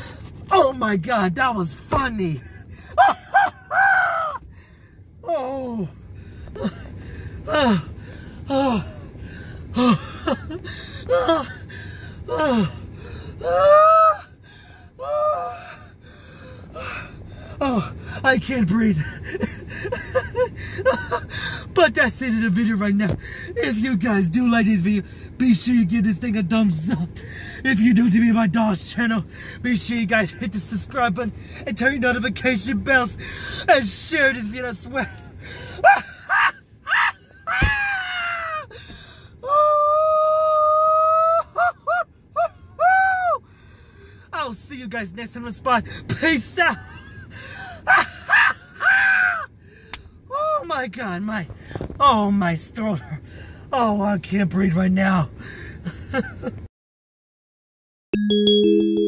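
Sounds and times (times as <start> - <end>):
man laughing breathlessly: 2.4 - 4.8, 6.3 - 13.5, 18.9 - 21.8, 35.0 - 37.5, 46.7 - 49.9, 55.3 - 56.7
man laughing hysterically: 2.9 - 4.4, 9.8 - 11.6, 19.0 - 21.4, 34.9 - 38.7, 40.2 - 43.4, 46.6 - 49.5, 55.8 - 56.7.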